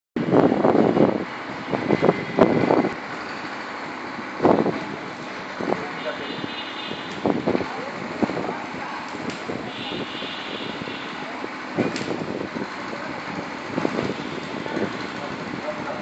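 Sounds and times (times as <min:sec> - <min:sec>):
distant road traffic: 0:00.2 - 0:16.0
men's voices: 0:12.6 - 0:16.0.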